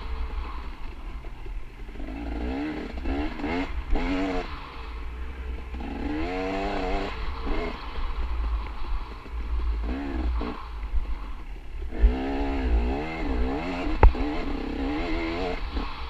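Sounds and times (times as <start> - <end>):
dirt bike engine revving: 0.0 - 16.0
wind rumble on microphone: 5.6 - 15.9.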